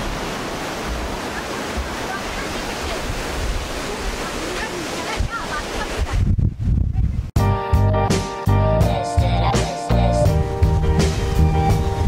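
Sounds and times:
ocean waves breaking: 0.0 - 6.3, 10.4 - 12.0
wind rumbling on microphone: 0.0 - 7.4, 10.6 - 12.0.

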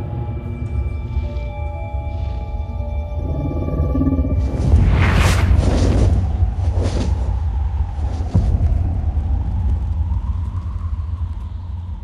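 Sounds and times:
deep low rumble: 2.9 - 12.0.

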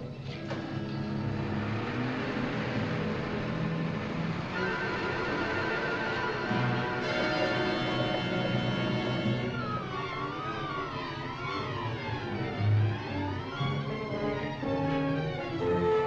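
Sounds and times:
car engine idling: 0.0 - 15.7
tense orchestral music: 0.0 - 16.0.

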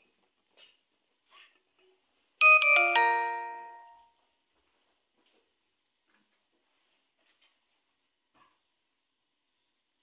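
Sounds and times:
electronic chime: 2.4 - 4.1.

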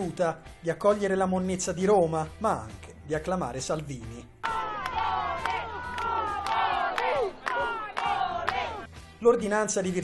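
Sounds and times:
crowd of protesters shouting: 4.4 - 8.9.

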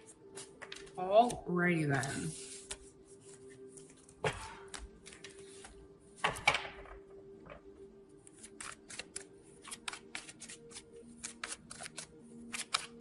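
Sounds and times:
cards being shuffled: 0.2 - 6.5, 8.2 - 13.0.

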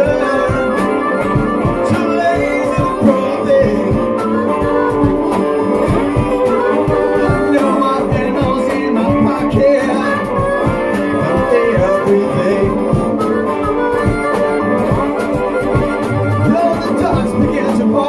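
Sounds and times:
blues harmonica solo: 0.0 - 18.0
steady drum beat: 0.0 - 18.0
strummed acoustic guitar: 0.0 - 18.0.

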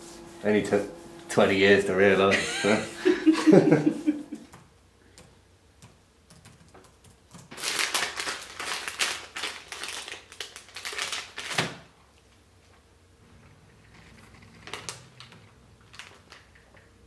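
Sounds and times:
foil wrapper tearing and crinkling: 7.4 - 11.9, 14.6 - 16.5.

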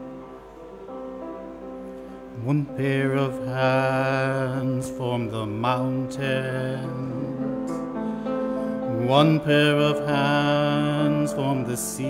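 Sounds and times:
instrumental backing: 0.0 - 12.0
man singing into a microphone: 2.4 - 12.0.

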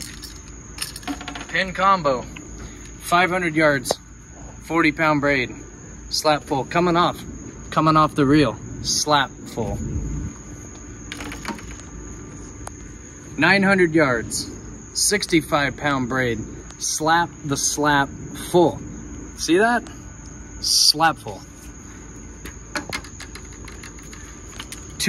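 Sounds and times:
fishing rods clicking and knocking: 0.0 - 1.7, 11.1 - 11.9, 22.4 - 25.0
faint steady hum: 0.0 - 25.0.

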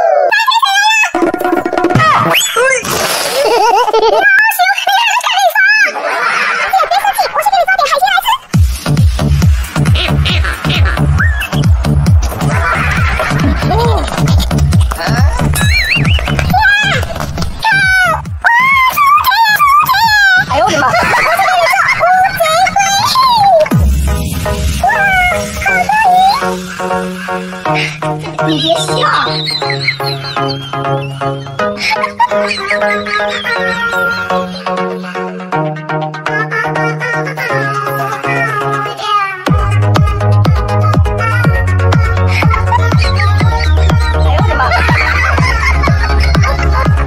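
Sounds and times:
high-pitched giggling: 0.0 - 8.4, 9.8 - 11.6, 12.5 - 17.0, 18.5 - 23.8, 24.8 - 35.3, 42.3 - 47.0
high squeal rising and falling: 9.9 - 17.0.

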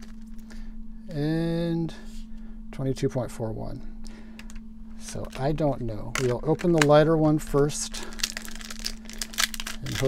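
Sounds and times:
foil wrapper crinkling: 0.0 - 0.6, 5.0 - 10.0.

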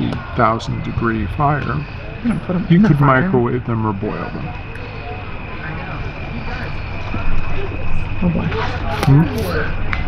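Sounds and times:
low background drone: 0.0 - 10.0.

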